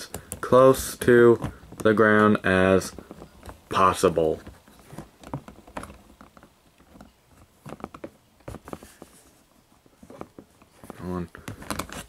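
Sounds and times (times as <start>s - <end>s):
plastic clicks and taps: 0.0s - 0.5s.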